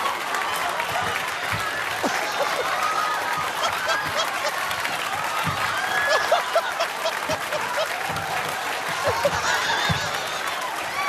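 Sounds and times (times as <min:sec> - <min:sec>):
audience clapping: 0:00.0 - 0:11.0
audience laughing: 0:01.8 - 0:10.9.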